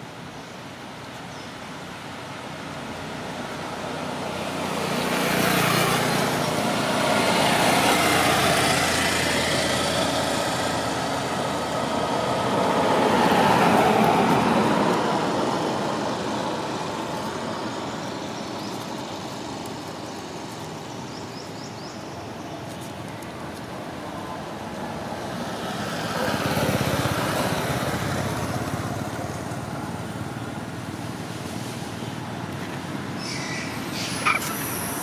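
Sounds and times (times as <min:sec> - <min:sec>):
road traffic passing: 0:00.0 - 0:35.0.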